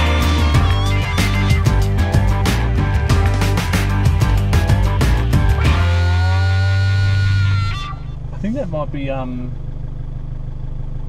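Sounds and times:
rock music: 0:00.0 - 0:08.2
vehicle engine and road drone: 0:00.0 - 0:11.0.

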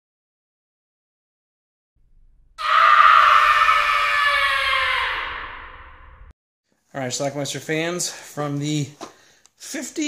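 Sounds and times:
long drawn-out scream: 0:02.6 - 0:06.3.

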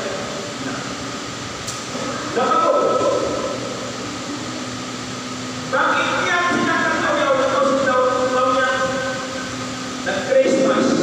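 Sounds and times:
steady background hum: 0:00.0 - 0:11.0
man speaking into a microphone: 0:05.7 - 0:09.3, 0:10.0 - 0:11.0.

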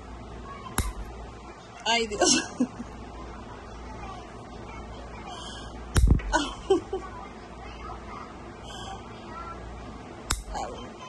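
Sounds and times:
nail clipper snapping: 0:00.8 - 0:01.0, 0:10.3 - 0:10.5.

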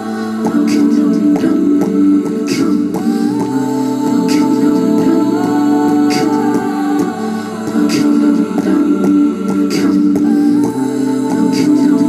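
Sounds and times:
looped hummed vocal harmonies: 0:00.0 - 0:12.0.

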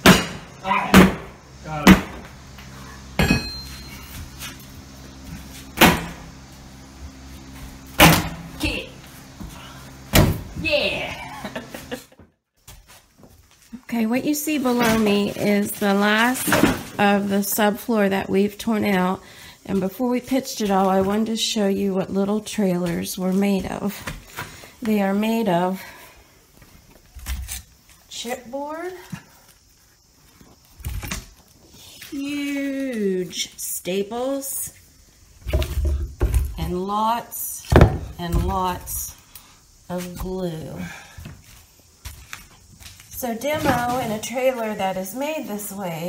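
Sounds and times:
loud wooden thump: 0:00.0 - 0:02.3, 0:10.1 - 0:10.6.

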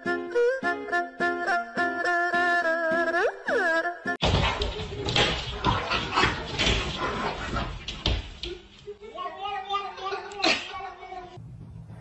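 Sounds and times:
knocks and scuffling: 0:04.2 - 0:09.1.

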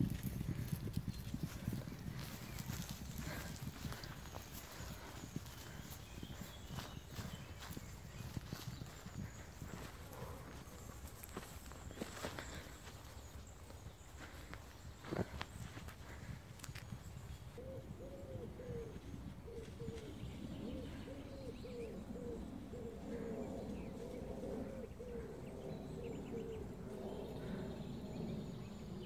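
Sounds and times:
hoofbeats on grass: 0:00.0 - 0:17.6.

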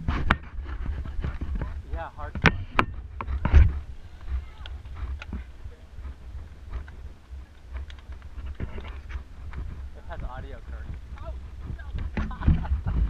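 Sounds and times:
wind rumble: 0:00.0 - 0:13.0
faint voices of riders: 0:03.2 - 0:08.1
bike clicks: 0:04.2 - 0:10.3.

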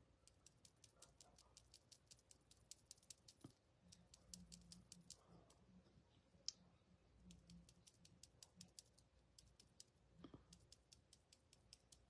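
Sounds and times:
rapid high-pitched clicking: 0:00.2 - 0:05.6, 0:07.2 - 0:12.0.

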